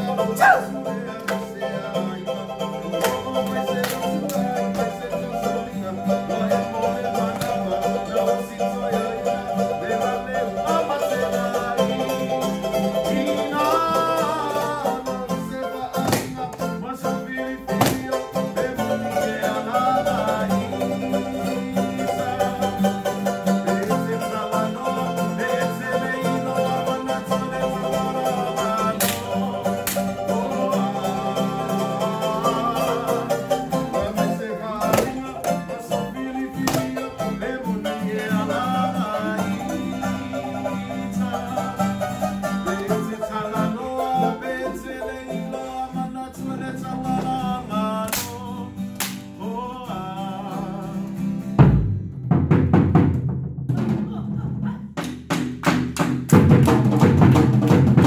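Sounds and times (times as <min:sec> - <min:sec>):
string band music: 0:00.0 - 0:48.4.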